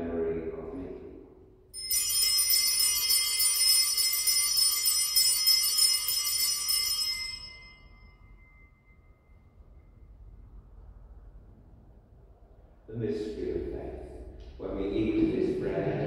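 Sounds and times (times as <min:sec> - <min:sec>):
small altar bells ringing: 0:01.7 - 0:10.2.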